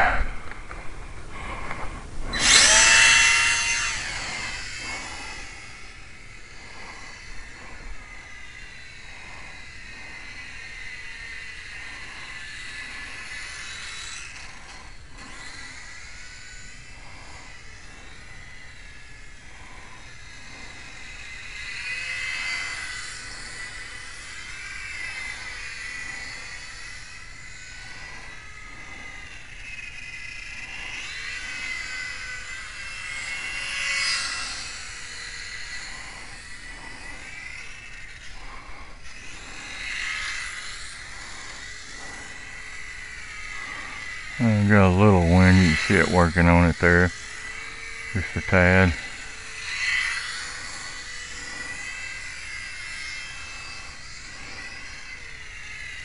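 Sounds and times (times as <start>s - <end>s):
model airplane motor whining: 0.0s - 56.0s.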